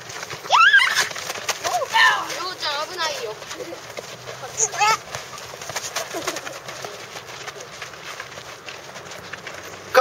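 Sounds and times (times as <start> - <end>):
child shouting: 0.5 - 3.4.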